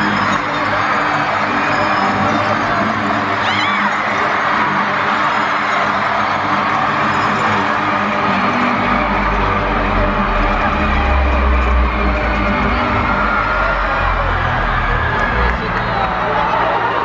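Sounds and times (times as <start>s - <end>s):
live concert music: 0.0s - 17.0s
heavy deep bass: 8.5s - 16.9s.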